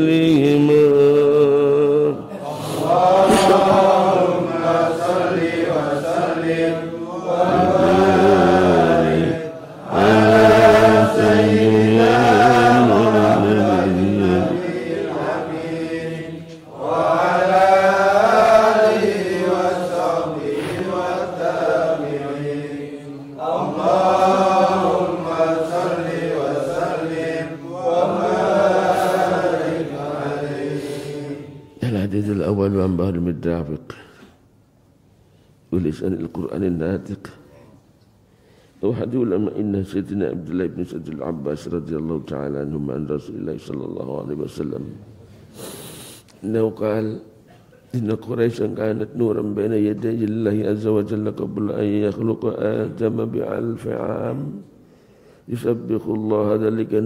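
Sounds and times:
men chanting: 0.0 - 32.0.

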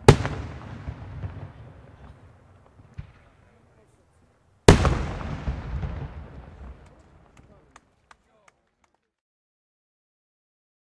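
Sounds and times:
firework bang with rumbling echo: 0.0 - 2.2, 4.7 - 7.3.

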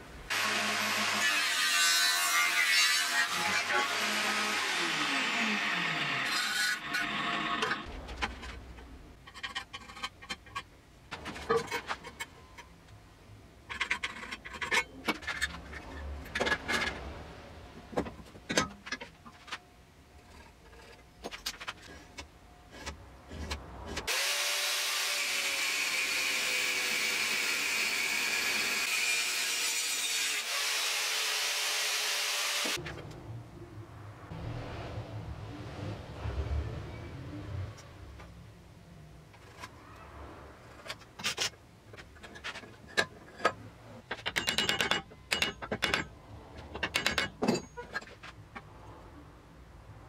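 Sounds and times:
metal parts clicking and clinking: 13.7 - 17.0, 40.7 - 48.4
power tool running: 24.1 - 29.8.

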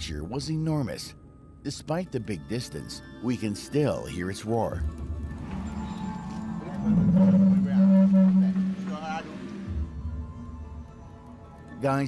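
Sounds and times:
background music: 0.0 - 12.0
high wavering call: 6.8 - 9.2.

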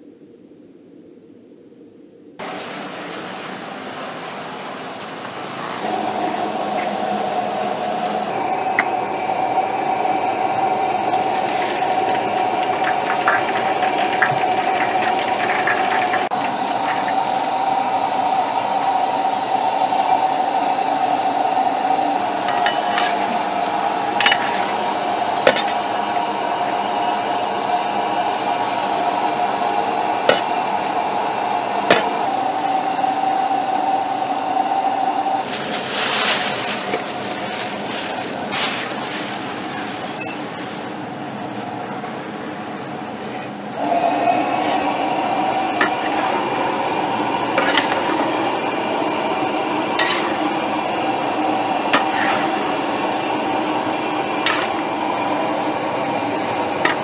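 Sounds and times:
kitchen machinery whining: 2.4 - 57.0.

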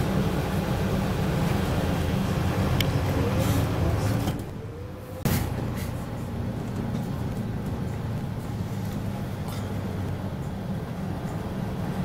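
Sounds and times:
bus engine pulling away: 0.0 - 12.0.

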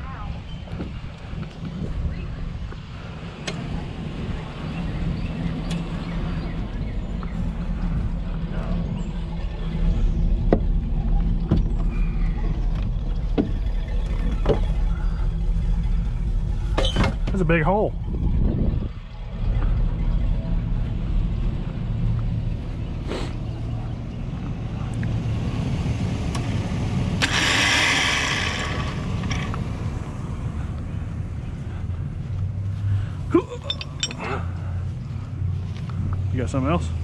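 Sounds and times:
engine idling: 2.4 - 37.0.

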